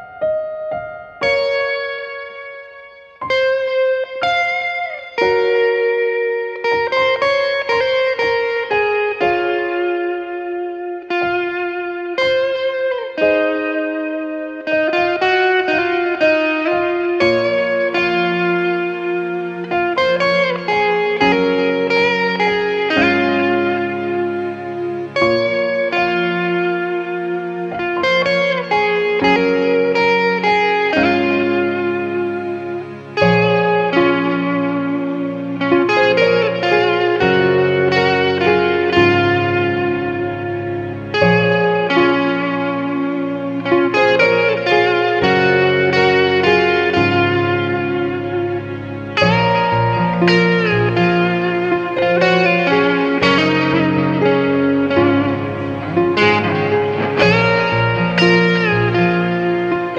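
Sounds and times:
electric guitar lead melody: 0.0 - 59.9
low sustained accompaniment notes: 0.9 - 59.9.

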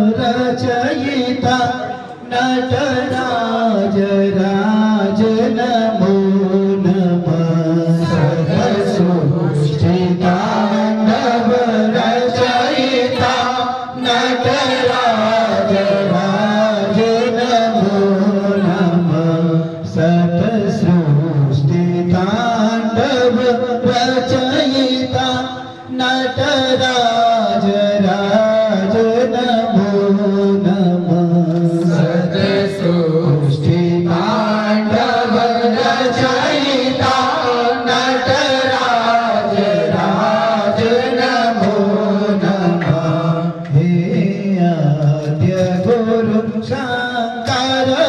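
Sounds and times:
male voices chanting: 0.0 - 48.0.

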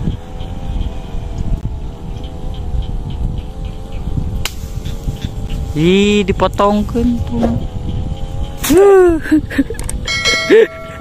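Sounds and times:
electronic bell chime: 10.1 - 11.0.

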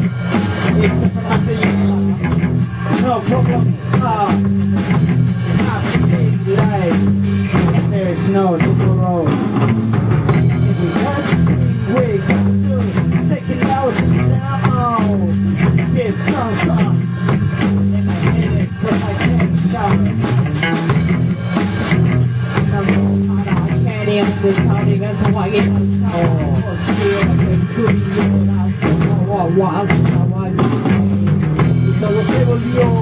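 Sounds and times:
funk band playing: 0.0 - 33.0.

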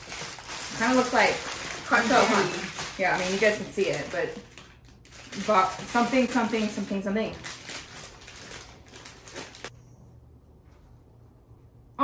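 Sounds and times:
plastic bag crinkling: 0.0 - 9.7.

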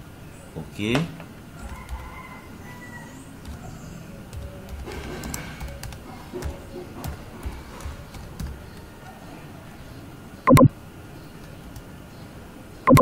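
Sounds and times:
computer keyboard typing: 1.6 - 2.3, 3.3 - 9.2, 11.4 - 11.9.

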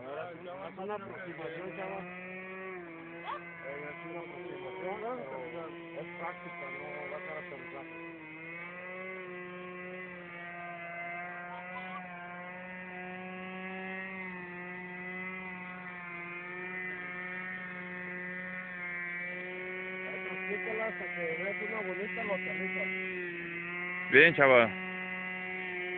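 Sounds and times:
model airplane motor buzzing: 0.0 - 25.9.

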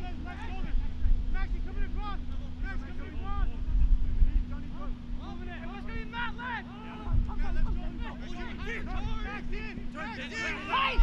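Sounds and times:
distant voices calling out: 0.0 - 11.0
wind rumbling on microphone: 0.0 - 11.0.

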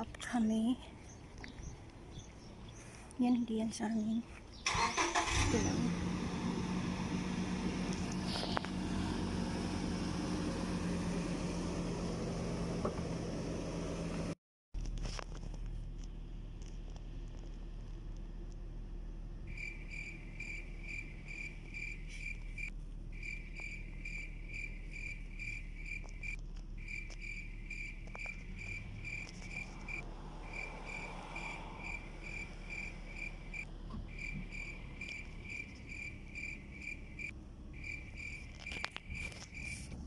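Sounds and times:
engine hum: 0.0 - 40.0
vehicle warning chime beeping: 19.5 - 39.9.

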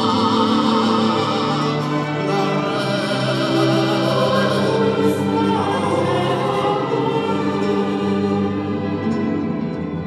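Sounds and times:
choir singing held chords: 0.0 - 10.0
string quartet: 0.0 - 10.0.

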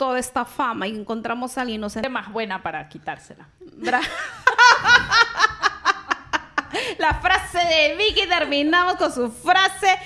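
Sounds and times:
women laughing: 3.8 - 7.2.

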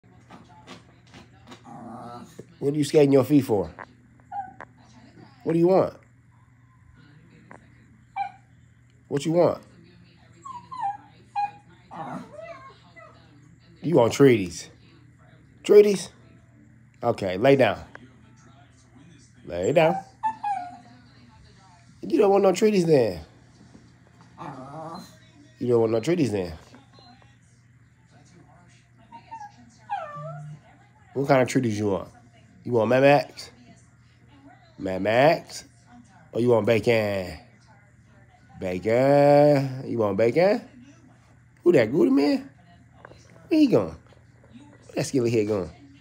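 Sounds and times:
small dog whining: 4.3 - 4.7, 10.4 - 13.2, 19.7 - 20.9, 24.4 - 25.2, 29.1 - 30.6.

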